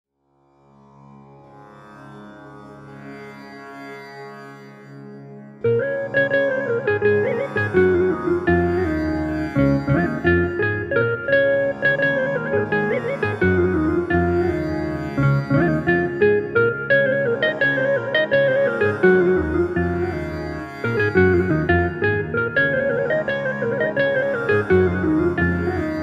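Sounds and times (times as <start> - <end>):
plucked-string keyboard melody: 3.1 - 26.0
low accompaniment: 5.7 - 26.0.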